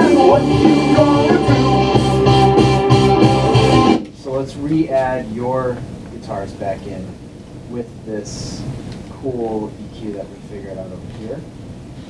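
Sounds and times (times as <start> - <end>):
low bass notes: 0.0 - 4.0
drum hits: 0.0 - 4.1.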